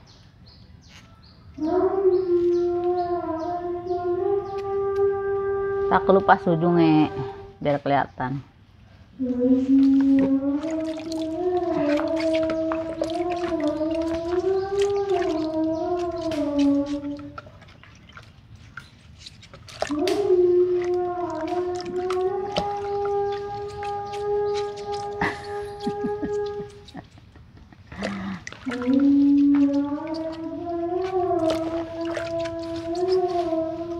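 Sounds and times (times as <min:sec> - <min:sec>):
wavering hum: 0:09.1 - 0:33.9
washing vegetables in water: 0:09.2 - 0:33.9
small splashes and knocks: 0:09.7 - 0:33.6.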